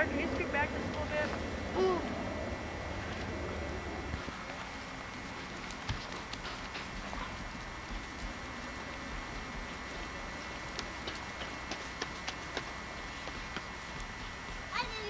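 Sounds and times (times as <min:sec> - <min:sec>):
hooves on dry grass: 0:03.0 - 0:15.0.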